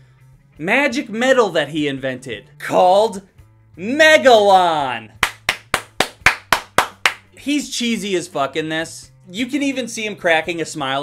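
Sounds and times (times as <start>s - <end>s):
person clapping hands quickly: 5.2s - 7.3s.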